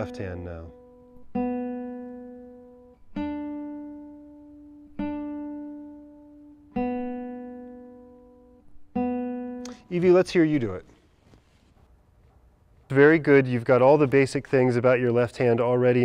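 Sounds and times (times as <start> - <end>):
classical guitar plucked notes: 0.0 - 10.0.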